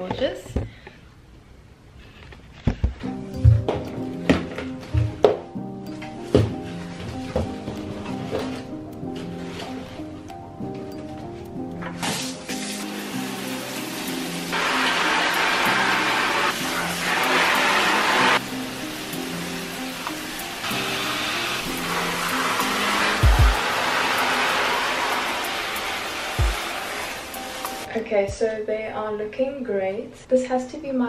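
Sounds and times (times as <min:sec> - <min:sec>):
soft background music: 0:02.5 - 0:31.0
shower head spraying water: 0:12.0 - 0:27.9.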